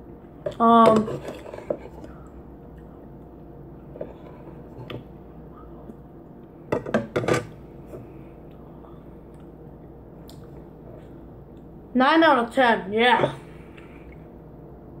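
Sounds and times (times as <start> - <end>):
chewing and mouth sounds: 1.9 - 3.9, 8.4 - 11.7.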